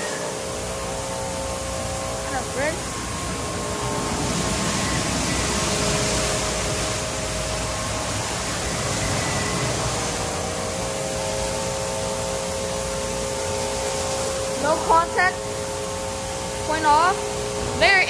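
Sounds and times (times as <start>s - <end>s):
motor hum: 0.0s - 18.0s
spraying water and brush noise: 0.0s - 18.0s.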